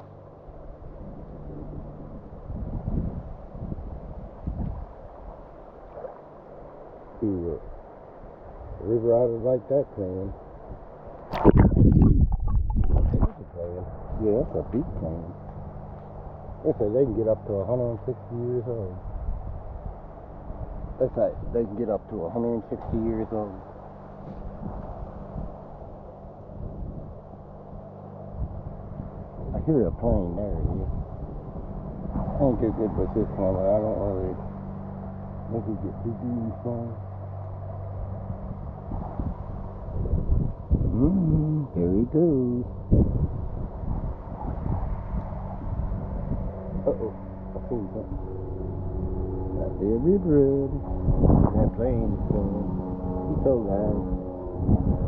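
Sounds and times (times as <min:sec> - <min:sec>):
aircraft engine drone: 0:00.0 - 0:55.0
wind buffeting microphone: 0:00.0 - 0:55.0.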